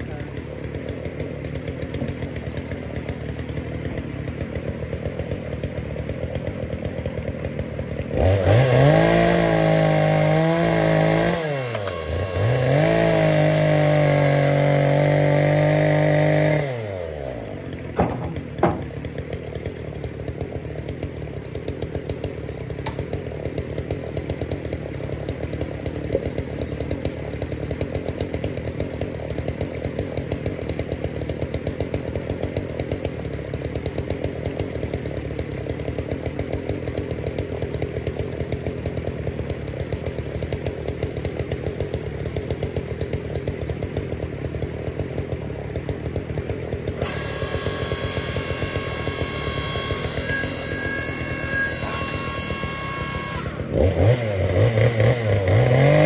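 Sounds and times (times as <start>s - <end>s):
log splitter motor and pump: 0.0s - 56.0s.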